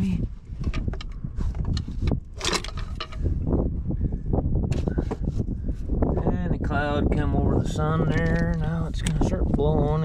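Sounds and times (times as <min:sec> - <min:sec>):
clicks and rattles of parts: 0:00.6 - 0:03.3, 0:08.1 - 0:09.2.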